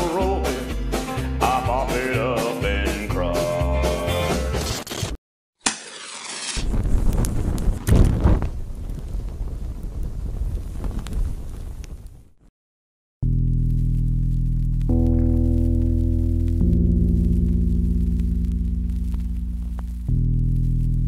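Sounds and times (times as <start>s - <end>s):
country song with acoustic guitar: 0.0s - 4.8s
rumbling explosion sound effect: 6.6s - 12.3s
low droning chord: 13.2s - 21.0s.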